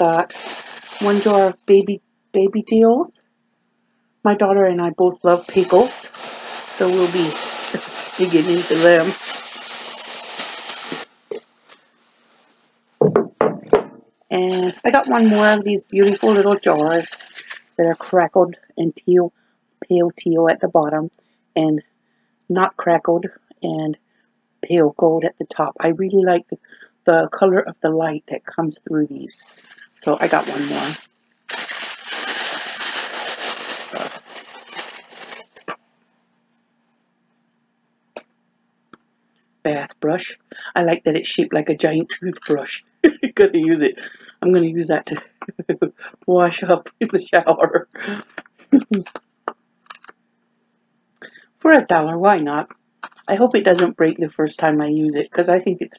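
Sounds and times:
plastic bag rustling: 0.0 - 1.6, 5.1 - 12.5, 14.3 - 18.1, 29.1 - 35.8.

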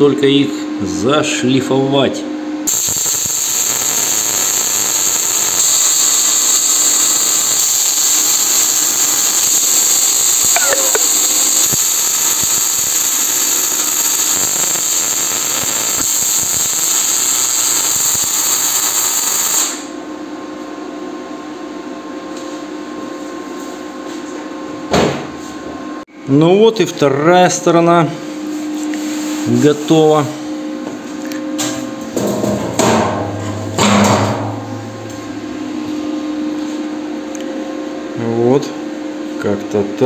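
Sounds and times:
arc welding crackling hiss: 2.7 - 19.9
steady hum: 22.0 - 40.0.

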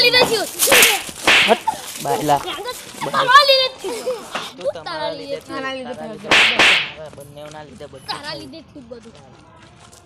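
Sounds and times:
boys talking: 0.0 - 9.8
sharp loud cracks: 0.6 - 1.7, 6.3 - 7.0.

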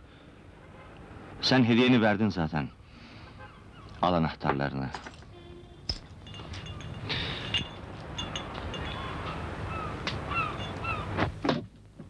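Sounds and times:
harbour background rumble and hiss: 0.0 - 12.0
gulls calling: 3.0 - 4.4, 5.3 - 11.5.

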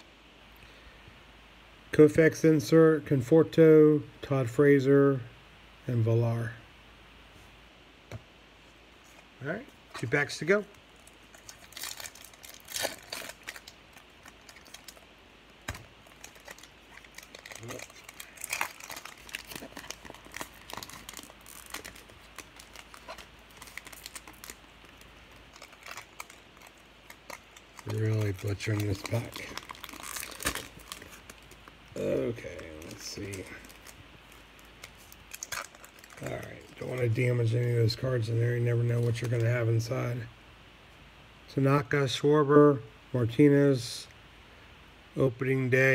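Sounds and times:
foil wrapper crinkling: 10.6 - 37.5
wrapper snapping: 11.0 - 37.0.

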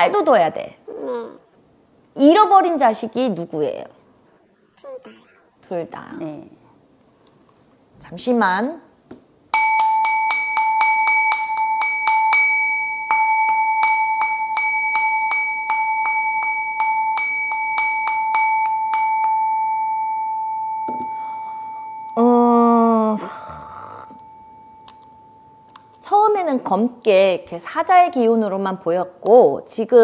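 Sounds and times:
handheld bell ringing: 9.6 - 26.1.

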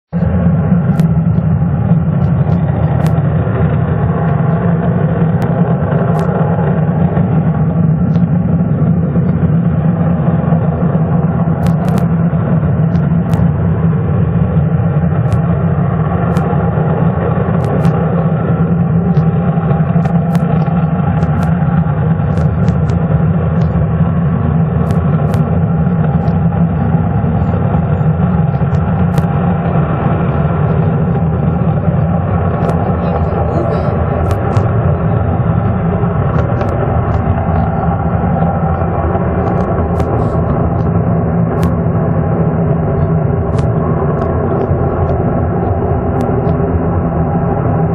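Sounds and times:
loud deep jet engine noise: 0.0 - 47.9.

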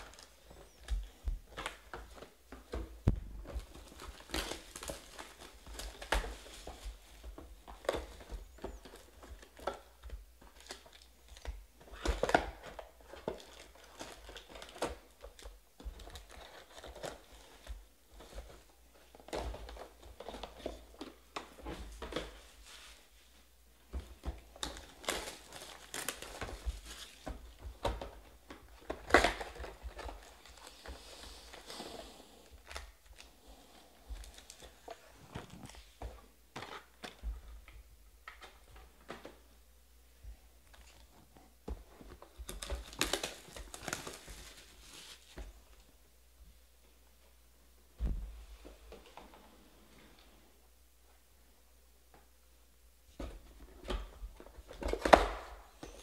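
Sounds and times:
plastic wrap crinkling and rustling: 0.0 - 39.5, 40.6 - 46.0.

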